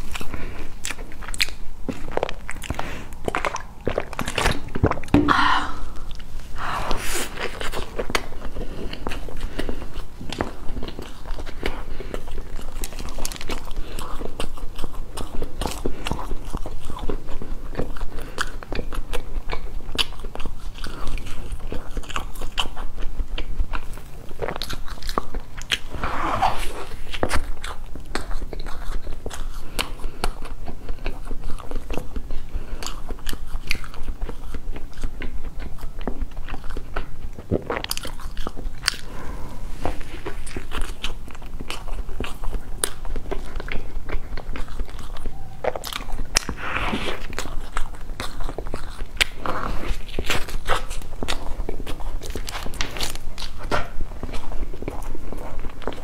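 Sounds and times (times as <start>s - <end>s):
steady low hum: 0.0s - 12.8s, 36.9s - 50.2s
person chewing cake: 0.0s - 56.0s.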